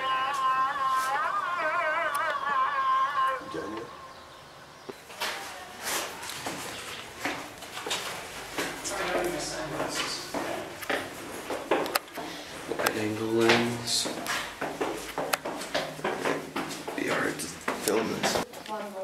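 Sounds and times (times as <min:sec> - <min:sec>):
man chanting call to prayer: 0:12.9 - 0:14.2.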